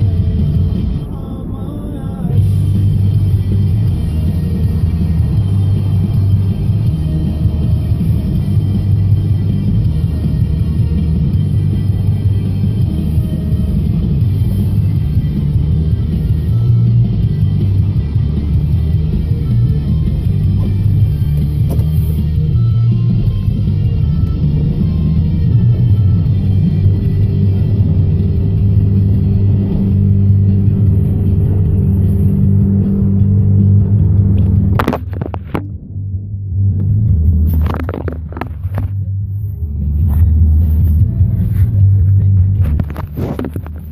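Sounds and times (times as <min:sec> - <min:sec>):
music: 0:00.0 - 0:43.9
truck engine rumbling: 0:00.0 - 0:43.9.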